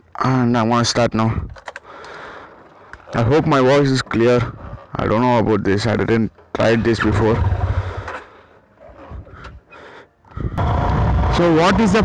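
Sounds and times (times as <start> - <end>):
motorcycle riding rumble: 6.6 - 9.7, 10.3 - 12.0.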